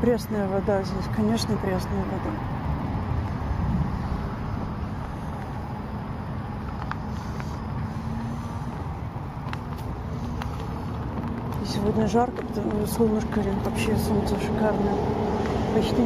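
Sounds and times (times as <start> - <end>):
low rumbling of riding on a path: 0.0 - 16.0.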